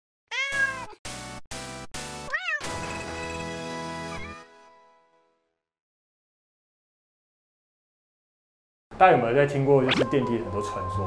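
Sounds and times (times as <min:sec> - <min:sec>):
cat meowing: 0:00.3 - 0:01.0, 0:02.3 - 0:02.7.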